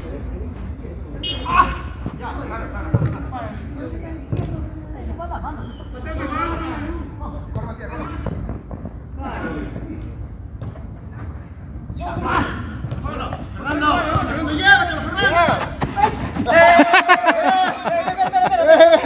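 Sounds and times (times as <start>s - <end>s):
ball being kicked: 10.6s - 10.9s
men shouting: 12.0s - 19.0s.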